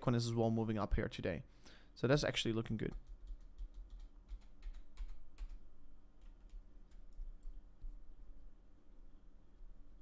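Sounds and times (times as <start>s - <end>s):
low steady hum: 0.0s - 10.0s
keyboard typing clicks: 2.9s - 5.6s.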